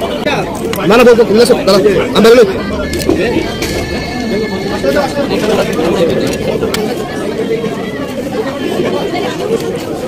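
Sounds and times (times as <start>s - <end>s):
many people talking at once: 0.0s - 10.0s.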